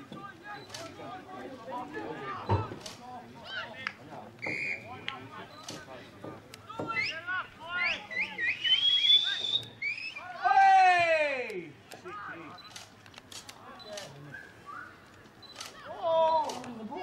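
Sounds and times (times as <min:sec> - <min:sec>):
people shouting: 0:06.6 - 0:12.5
sharp clicks: 0:12.6 - 0:15.8.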